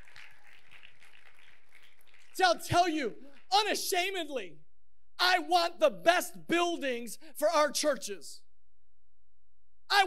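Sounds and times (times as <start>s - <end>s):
scattered clapping: 0.0s - 3.6s.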